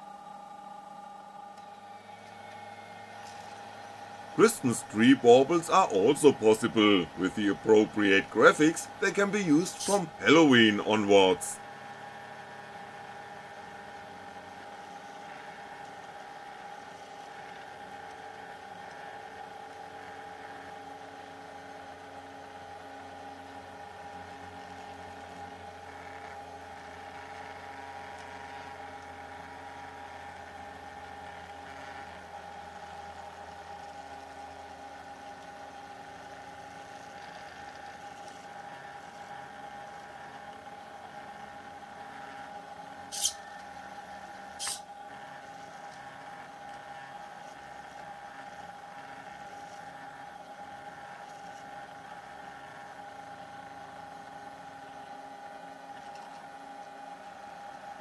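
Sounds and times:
stepper motors whining: 1.6s - 11.6s, 42.0s - 48.6s.

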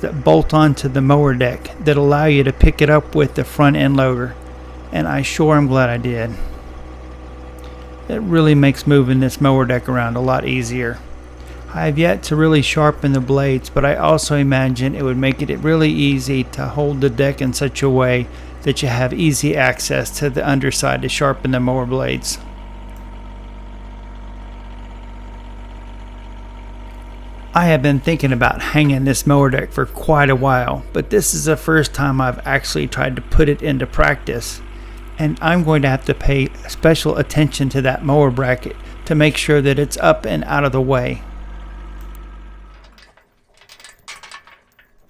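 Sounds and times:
diesel tractor engine idling: 0.0s - 44.8s
metal chain clinking: 42.7s - 45.0s.

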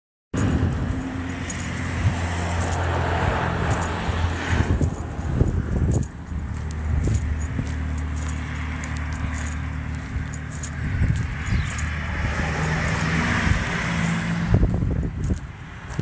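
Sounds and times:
vehicle engine humming: 0.4s - 16.0s.

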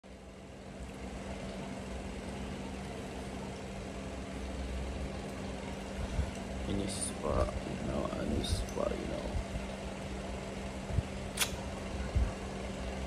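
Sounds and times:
machine hum: 0.0s - 13.0s.

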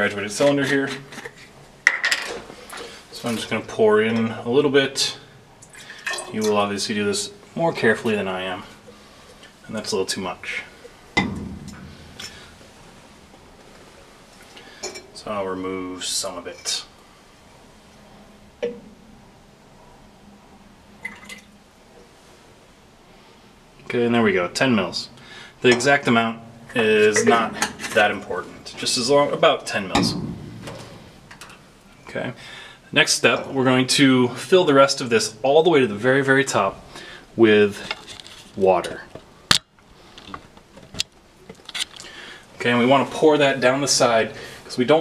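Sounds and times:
small liquid drips: 5.6s - 6.6s, 21.0s - 22.1s
lab equipment clicks and knocks: 11.2s - 13.4s, 30.0s - 31.6s.

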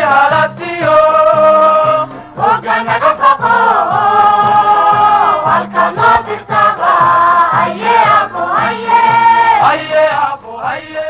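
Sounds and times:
repeated low backing notes: 0.0s - 10.6s
group of voices singing: 0.0s - 11.0s.

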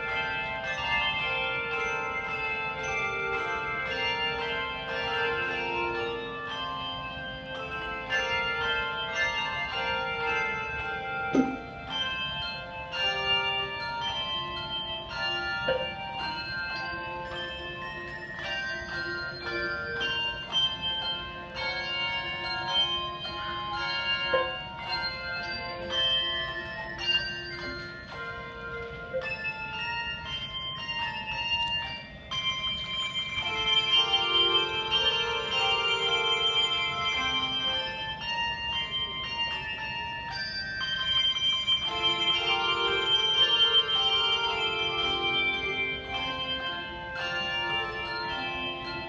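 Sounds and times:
handbell choir playing: 0.0s - 49.0s.

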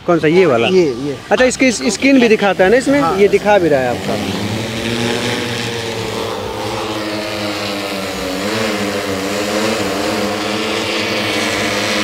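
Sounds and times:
drone propellers humming: 0.0s - 12.0s.

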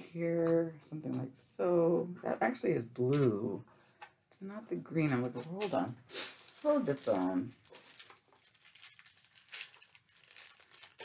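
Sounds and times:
plastic packet crinkling: 5.3s - 11.0s.

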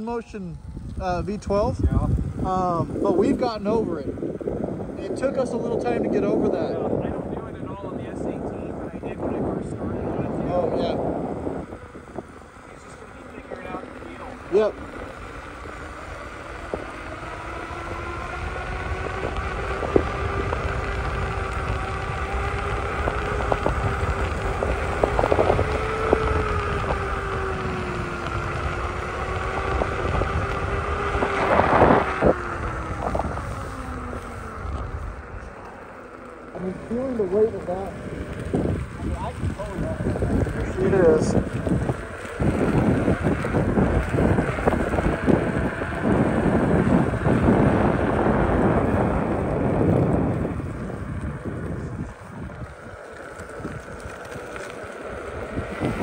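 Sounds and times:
electric motor whining: 0.0s - 56.0s
low road rumble: 0.0s - 56.0s
wind buffeting microphone: 0.0s - 56.0s.

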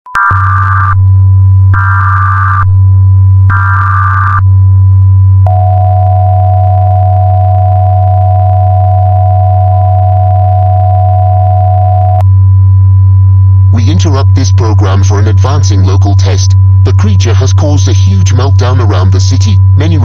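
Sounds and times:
low hum: 0.4s - 20.0s
screeching digital data bursts: 1.8s - 2.6s, 3.5s - 4.4s.

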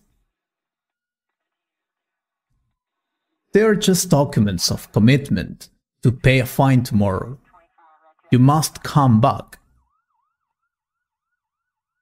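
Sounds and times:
faint electronic siren warbling: 9.8s - 12.0s.

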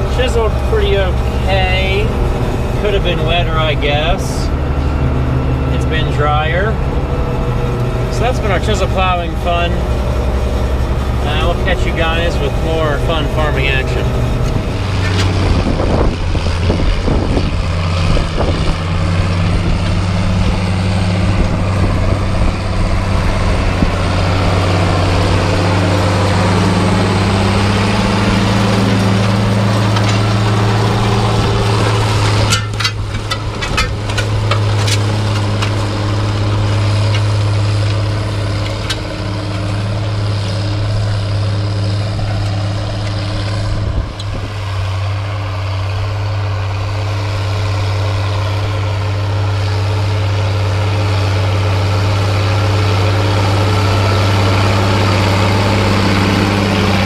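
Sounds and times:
tractor diesel engine: 0.0s - 57.0s.

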